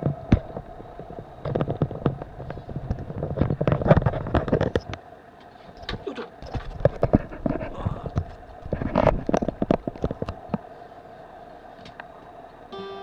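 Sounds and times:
acoustic guitar chord strummed: 0:12.7 - 0:13.0.

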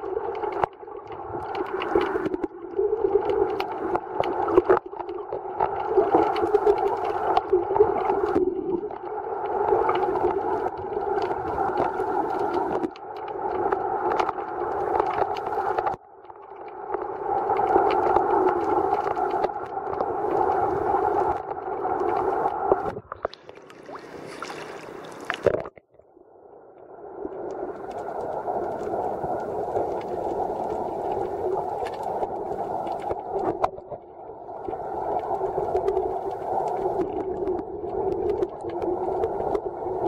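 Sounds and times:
faint clicks and crackles: 0:00.0 - 0:24.0, 0:27.3 - 0:40.0
small waves lapping and splashing: 0:20.3 - 0:25.7.

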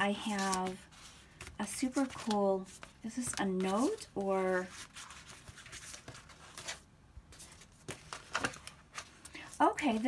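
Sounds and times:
paper rustling: 0:00.0 - 0:10.0.

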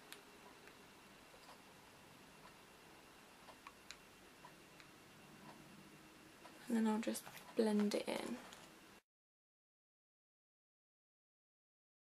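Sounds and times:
faint ticking: 0:02.3 - 0:08.3.

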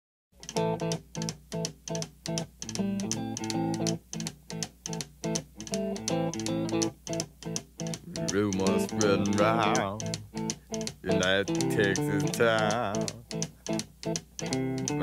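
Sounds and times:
electric guitar boogie riff: 0:00.4 - 0:15.0
sharp ticks keeping beat: 0:00.4 - 0:15.0.

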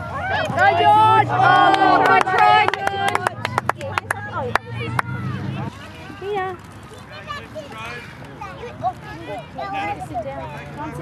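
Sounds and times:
voices calling out: 0:00.0 - 0:11.0
spectators clapping: 0:00.4 - 0:05.6.

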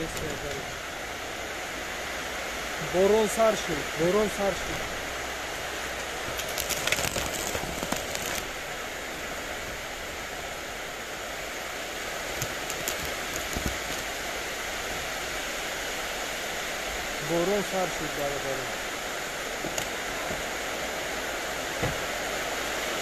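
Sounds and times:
plants rustling and clicking: 0:00.0 - 0:00.7, 0:06.0 - 0:08.6, 0:12.3 - 0:14.2
steady hiss: 0:00.0 - 0:23.0.

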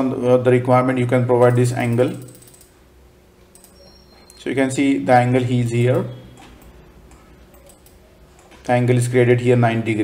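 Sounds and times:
computer mouse clicking: 0:01.5 - 0:02.7, 0:03.5 - 0:04.4, 0:06.4 - 0:08.7.

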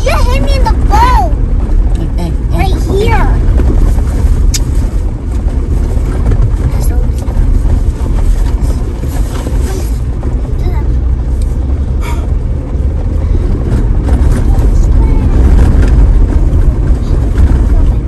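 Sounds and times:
vehicle engine rumble: 0:00.0 - 0:18.0
wind: 0:00.0 - 0:18.0.

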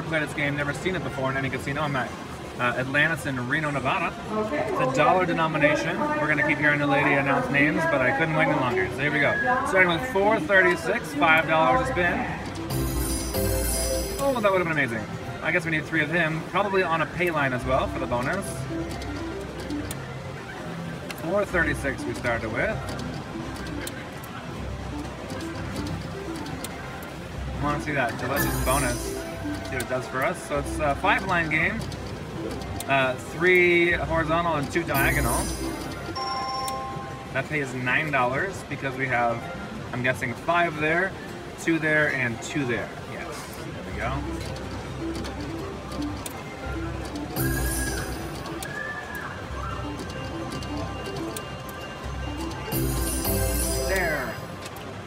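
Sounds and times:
casino background hum: 0:00.0 - 0:55.0
slot machine electronic tones: 0:09.8 - 0:16.1, 0:17.1 - 0:38.1, 0:43.6 - 0:55.0
slot machine spin jingle: 0:12.6 - 0:15.1, 0:27.8 - 0:31.7, 0:34.8 - 0:37.6, 0:45.4 - 0:48.8, 0:49.8 - 0:54.6.

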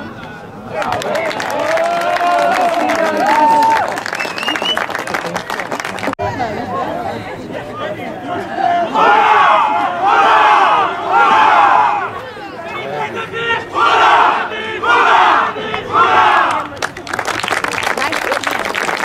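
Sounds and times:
team shouting cheer in unison: 0:08.6 - 0:12.2, 0:13.1 - 0:16.6.

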